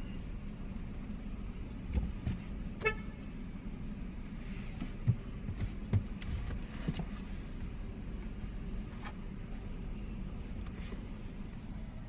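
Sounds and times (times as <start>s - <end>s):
car engine rumble and road noise: 0.0s - 12.0s.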